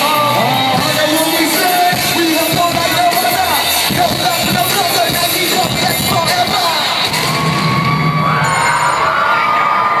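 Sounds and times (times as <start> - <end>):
concert crowd cheering: 0.0 - 10.0
live hip-hop music: 0.0 - 10.0
high-pitched screams: 6.6 - 10.0.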